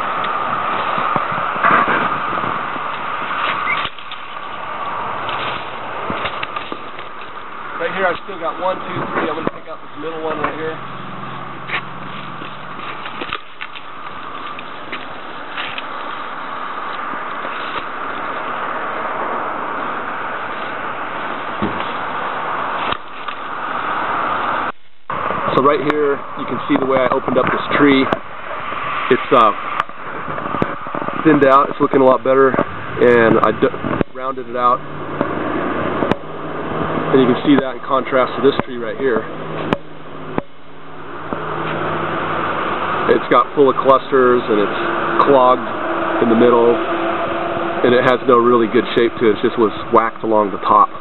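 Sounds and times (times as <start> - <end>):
low engine hum: 0.0 - 51.0
road traffic noise: 0.0 - 51.0
sharp click: 2.9 - 4.4.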